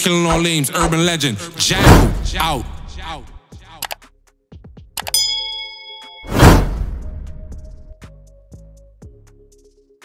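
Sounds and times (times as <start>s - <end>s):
bell ding: 5.0s - 6.6s.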